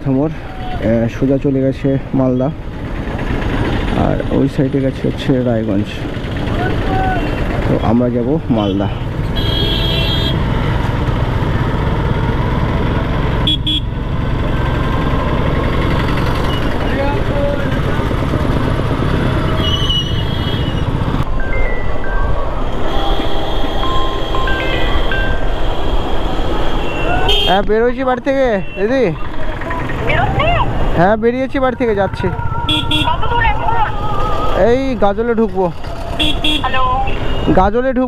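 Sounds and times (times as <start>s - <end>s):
motorcycle engine: 2.2s - 21.3s, 22.8s - 37.6s
car horn toots: 9.4s - 10.4s, 13.4s - 13.9s, 22.9s - 27.7s, 32.7s - 33.2s, 36.2s - 37.5s.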